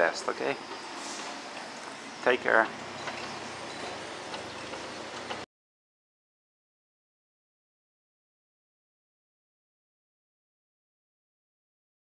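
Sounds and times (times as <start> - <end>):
distant traffic hum: 0.0 - 5.4
town noise: 0.0 - 5.4.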